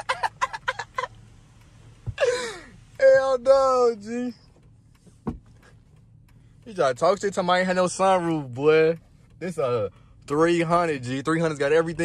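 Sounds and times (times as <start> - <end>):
man laughing: 0.0 - 1.2, 2.1 - 2.8
car cabin engine and road hum: 0.0 - 12.0.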